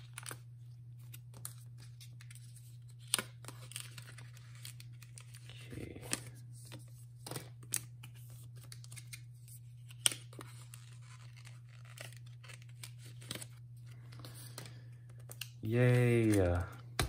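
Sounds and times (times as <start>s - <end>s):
card rustling against plastic: 0.0s - 17.0s.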